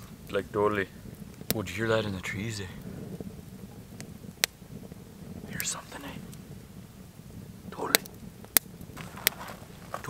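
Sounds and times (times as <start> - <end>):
low steady rumble: 0.0 - 10.0
sharp snaps: 7.8 - 9.4.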